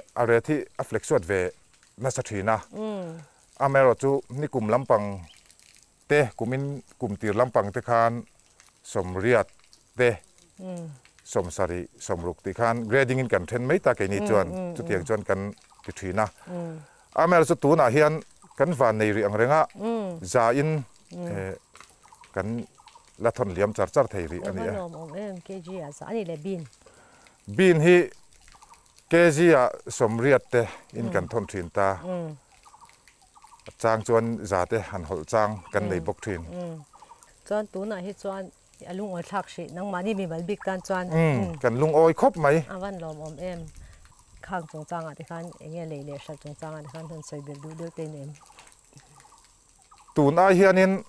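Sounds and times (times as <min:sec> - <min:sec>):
person talking: 0:00.0 - 0:05.3, 0:10.0 - 0:21.6, 0:22.4 - 0:26.7, 0:27.5 - 0:28.1, 0:29.1 - 0:32.4, 0:33.7 - 0:36.8, 0:37.5 - 0:43.7, 0:50.2 - 0:51.0
man speaking drawn-out vowel: 0:12.9 - 0:16.3, 0:20.2 - 0:21.6, 0:23.2 - 0:24.8, 0:29.1 - 0:32.0, 0:33.8 - 0:36.5, 0:41.1 - 0:42.6.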